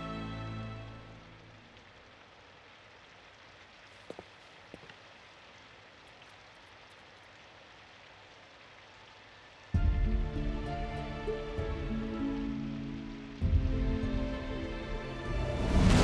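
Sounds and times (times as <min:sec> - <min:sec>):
music: 0:00.0 - 0:01.6, 0:09.7 - 0:16.0
faint steady rain: 0:00.0 - 0:16.0.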